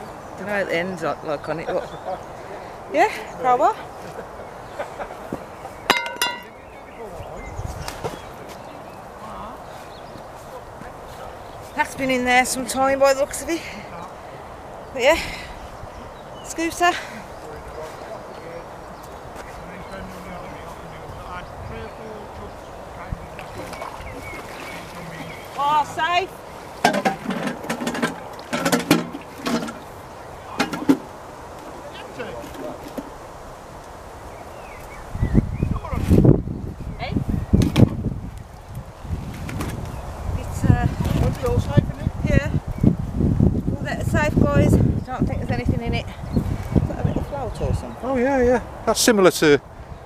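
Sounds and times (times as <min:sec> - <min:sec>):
crowbar clanking against metal: 0:05.9 - 0:06.6.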